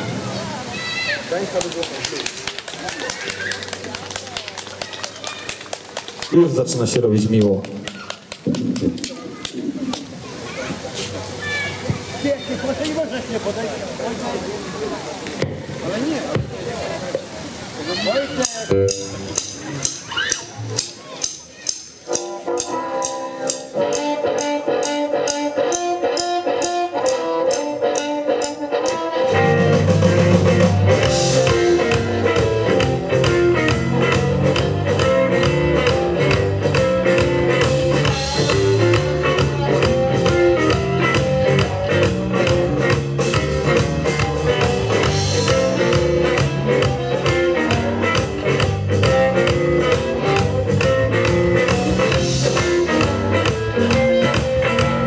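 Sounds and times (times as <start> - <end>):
bass: 0.0 - 1.3, 17.9 - 27.6, 29.2 - 55.0
electric guitar: 17.9 - 20.8, 21.5 - 55.0
drum beat: 18.4 - 55.0.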